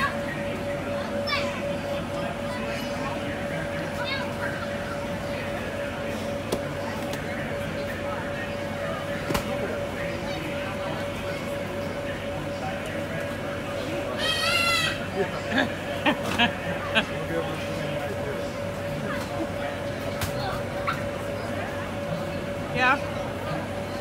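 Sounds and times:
blower hum and air rush: 0.0s - 24.0s
child squealing: 14.2s - 15.0s.

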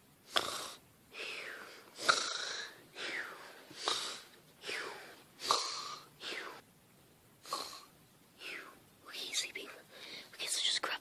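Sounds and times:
child pretend snoring: 0.3s - 0.8s, 2.0s - 2.8s, 3.8s - 6.4s, 7.4s - 7.9s.

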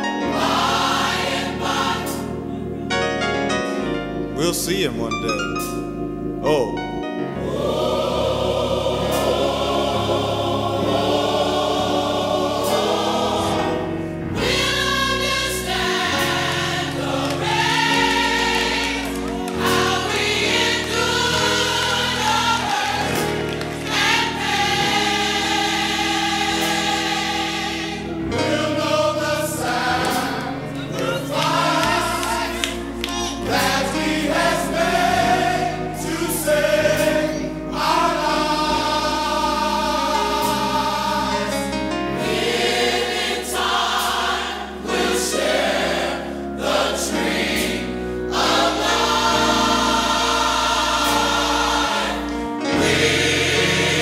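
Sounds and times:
band accompaniment: 0.0s - 54.0s
gospel choir singing: 0.0s - 54.0s.

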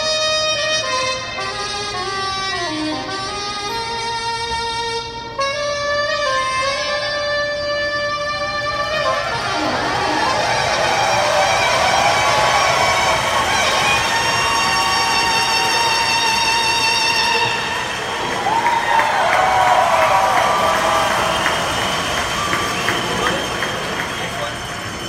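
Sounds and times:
saxophone long notes with vibrato: 0.0s - 25.0s
crowd cheering and applauding: 8.7s - 25.0s
whistles: 9.6s - 25.0s.

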